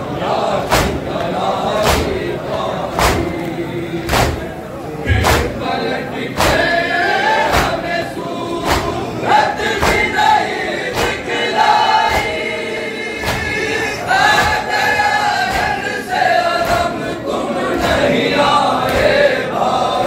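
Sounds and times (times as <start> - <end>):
men chanting a lament: 0.0 - 20.0
hands striking chests: 5.1 - 5.6.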